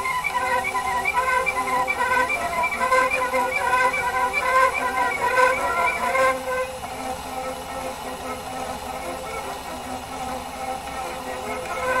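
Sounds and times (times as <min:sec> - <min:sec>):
old gramophone record music: 0:00.0 - 0:12.0
record surface hiss: 0:00.0 - 0:12.0.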